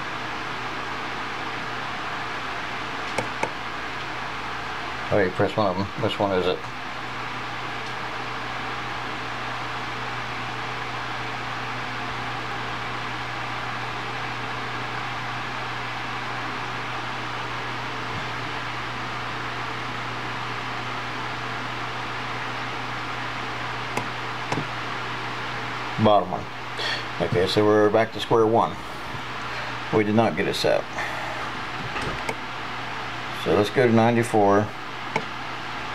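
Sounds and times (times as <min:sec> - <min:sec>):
low hum and hiss: 0:00.0 - 0:35.9.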